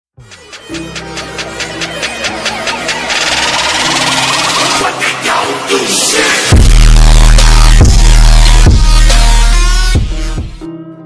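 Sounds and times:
electronic music with ticking beat: 0.2 - 10.6.

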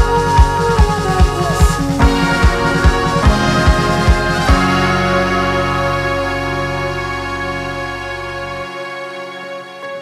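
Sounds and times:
sustained chord background music: 0.0 - 10.0.

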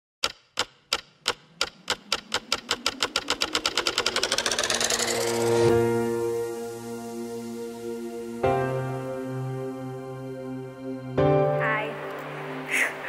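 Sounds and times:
accelerating sharp clicks: 0.2 - 5.9
sustained musical chords: 3.6 - 13.0.

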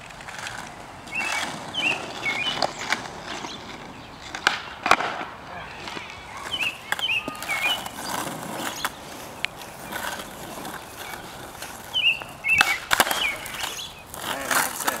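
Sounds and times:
skateboard clacks: 0.0 - 15.0
skateboard wheels rolling on asphalt: 0.0 - 15.0.

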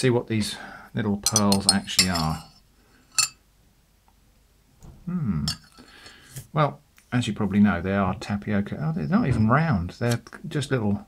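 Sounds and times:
metal spoon clinking on glass: 1.2 - 3.4.

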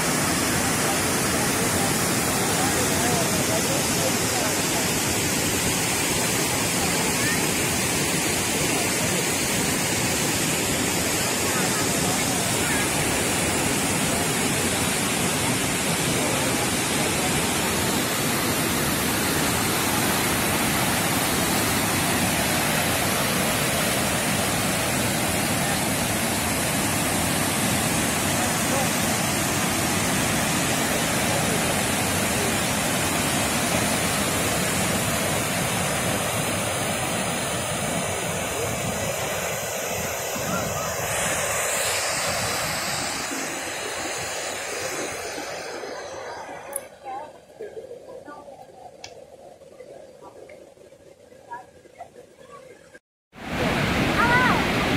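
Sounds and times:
waterfall rushing over rocks: 0.0 - 47.1, 53.4 - 54.9.

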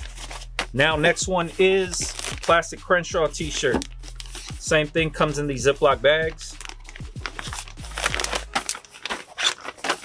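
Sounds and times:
plastic bag crinkling: 6.5 - 10.0.

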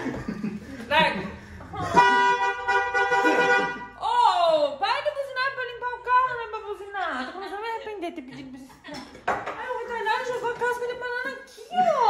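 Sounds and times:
woman laughing and exclaiming: 11.6 - 12.0.

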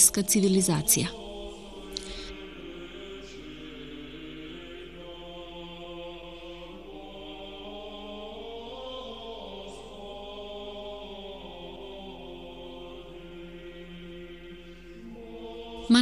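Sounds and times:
slow sung chant: 0.0 - 16.0.

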